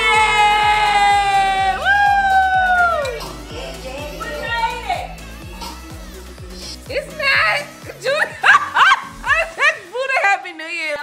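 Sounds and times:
long drawn-out yells: 0.0s - 5.3s
people cheering: 0.0s - 6.4s
background music with steady beat: 0.0s - 11.0s.

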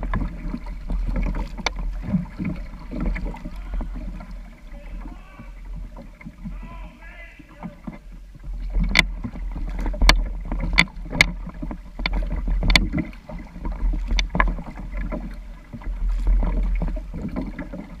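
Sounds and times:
paddle splashes: 0.0s - 18.0s
water rumbling along kayak hull: 0.0s - 18.0s.

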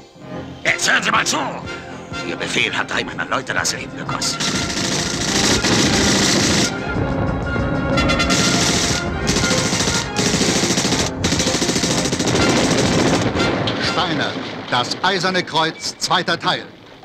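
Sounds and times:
music: 0.0s - 14.4s
machine-gun fire: 4.4s - 6.8s, 8.2s - 14.7s.

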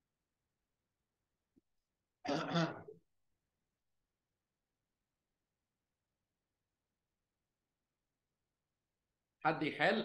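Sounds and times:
person clearing throat: 2.2s - 3.0s.

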